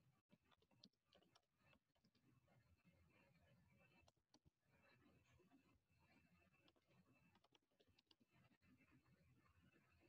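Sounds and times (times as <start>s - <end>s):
faint computer keyboard typing: 0.3s - 2.3s, 6.6s - 8.2s.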